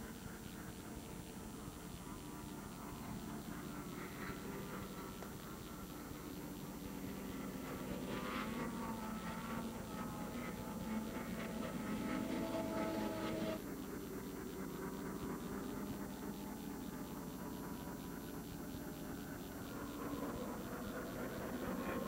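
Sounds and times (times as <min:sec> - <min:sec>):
distant snowmobile engines: 0:00.0 - 0:22.0.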